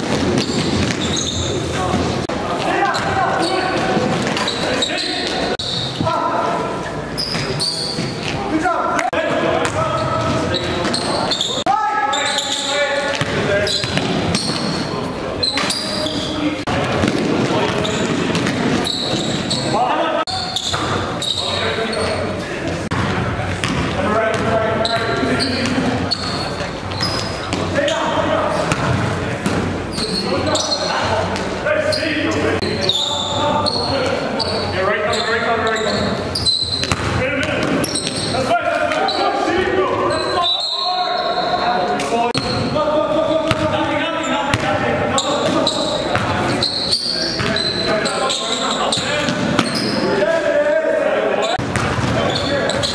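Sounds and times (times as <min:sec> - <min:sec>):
basketball bouncing on court: 0:00.0 - 0:02.1, 0:09.6 - 0:11.0, 0:13.1 - 0:14.9, 0:15.6 - 0:19.6, 0:22.9 - 0:27.7, 0:36.4 - 0:38.3, 0:43.5 - 0:43.7, 0:44.5 - 0:44.8, 0:51.6 - 0:52.9
players calling out: 0:00.0 - 0:52.9.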